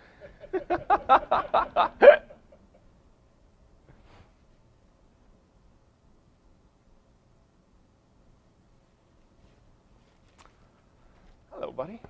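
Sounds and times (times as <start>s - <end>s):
man laughing: 0.0s - 3.0s.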